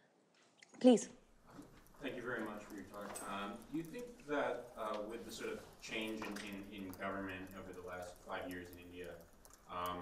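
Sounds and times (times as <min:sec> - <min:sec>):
typing on laptop keyboard: 0:01.5 - 0:10.0.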